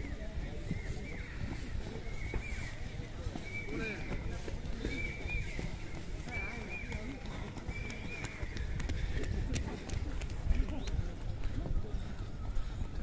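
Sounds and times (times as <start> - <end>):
distant voices: 0.0 - 13.0.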